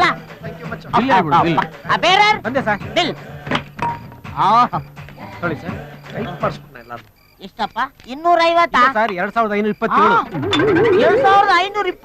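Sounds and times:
background music: 0.0 - 7.5, 10.2 - 12.0.

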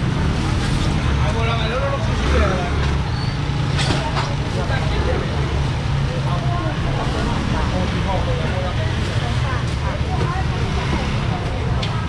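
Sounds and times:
distant chatter: 0.9 - 12.0.

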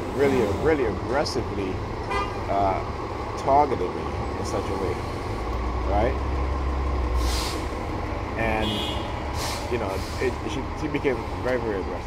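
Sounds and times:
low rumble of road traffic: 0.0 - 12.0
short hiss: 7.2 - 7.7.

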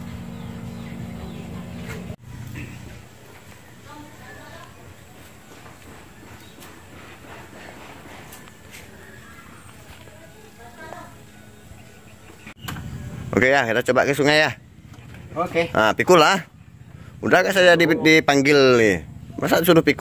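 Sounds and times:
low steady hum: 0.0 - 20.0
faint voices talking: 1.1 - 13.5.

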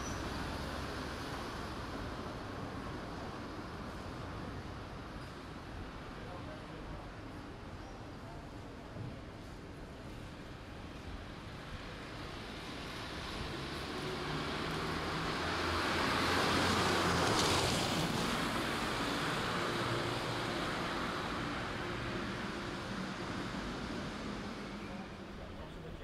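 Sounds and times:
vehicle passing by: 12.4 - 25.4.

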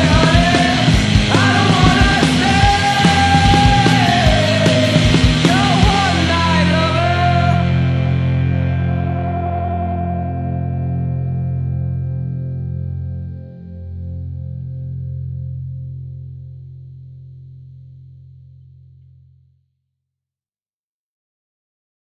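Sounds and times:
held low notes: 0.0 - 16.9
distorted electric guitar chord: 0.0 - 17.2.

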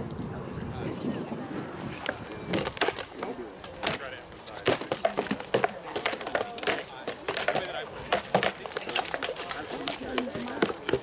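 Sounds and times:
spectators talking: 0.0 - 11.0
swords striking shields and armour: 3.7 - 9.4.

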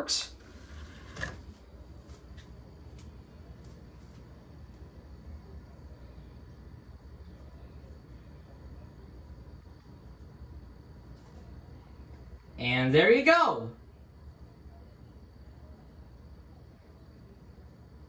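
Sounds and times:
disc player humming: 0.0 - 12.6.

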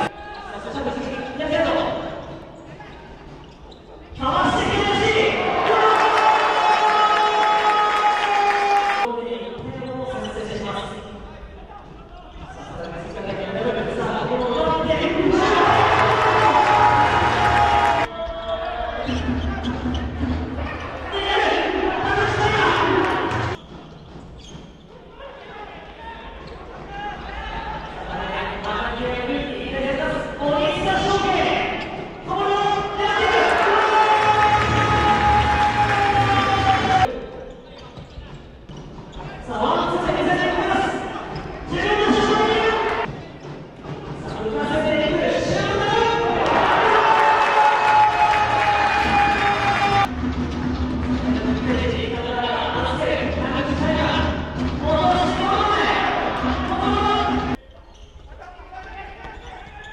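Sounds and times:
players and spectators voices: 0.0 - 23.6, 24.7 - 59.9
crowd noise: 0.0 - 59.9.

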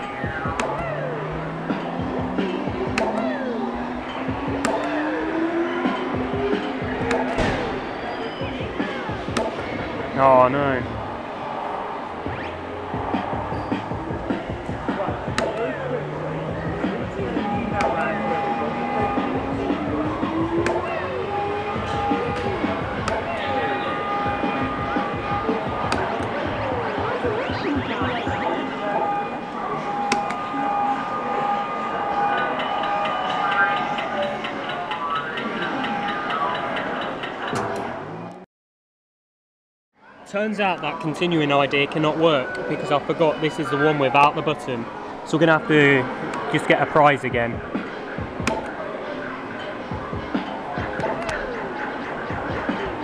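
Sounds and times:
rising electronic tone: 0.0 - 36.5
electronic arcade music: 0.0 - 37.5, 40.9 - 53.0
background chatter: 0.0 - 38.2, 40.0 - 53.0.

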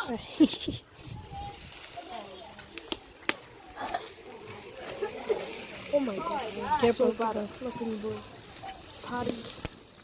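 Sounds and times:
faint voices: 0.0 - 10.0.

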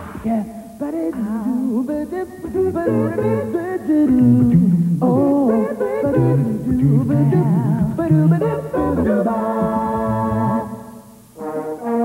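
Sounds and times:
voices singing in harmony: 0.2 - 12.0.

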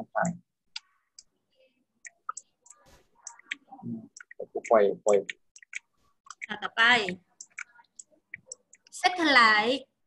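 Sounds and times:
computer mouse clicking: 2.0 - 9.0.

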